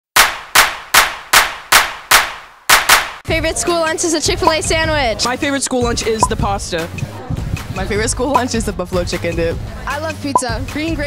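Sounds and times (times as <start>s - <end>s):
sharp percussive hits: 0.2s - 3.2s.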